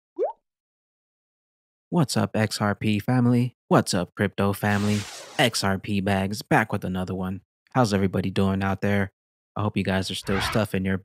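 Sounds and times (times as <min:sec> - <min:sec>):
man speaking: 0:02.0 - 0:11.0.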